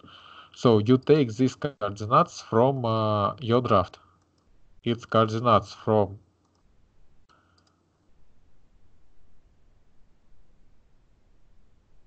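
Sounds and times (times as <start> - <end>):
person speaking: 0.0 - 4.0, 4.8 - 6.2
computer mouse clicks: 4.1 - 4.5, 6.4 - 6.7, 7.3 - 7.9.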